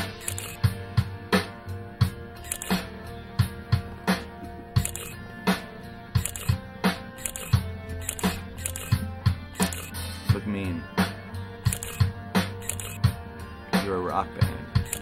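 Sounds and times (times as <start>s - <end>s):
drum kit steady beat: 0.0s - 15.0s
guitar: 0.0s - 15.0s.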